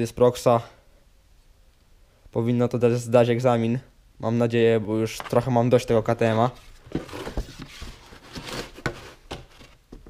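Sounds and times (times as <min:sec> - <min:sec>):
cardboard rustling and scraping: 0:06.3 - 0:10.0.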